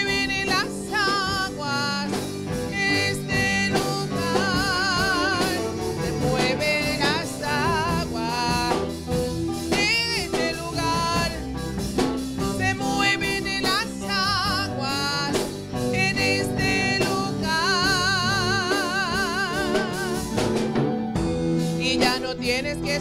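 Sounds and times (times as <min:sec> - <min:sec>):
women singing worship song: 0:00.0 - 0:09.0, 0:09.7 - 0:20.4
drum kit: 0:00.0 - 0:23.0
electric guitar: 0:00.0 - 0:23.0
keyboard: 0:00.0 - 0:23.0.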